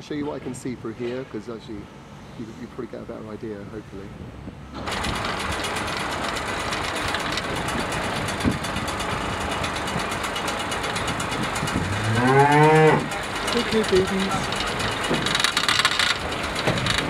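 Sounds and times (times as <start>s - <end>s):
cow mooing: 11.7s - 13.1s.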